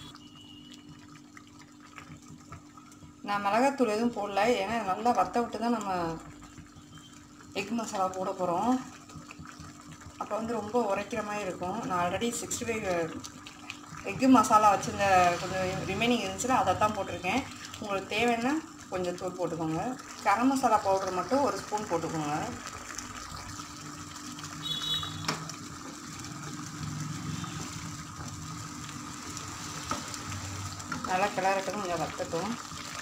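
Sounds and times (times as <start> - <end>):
gravy simmering with low hiss: 0.0 - 33.0.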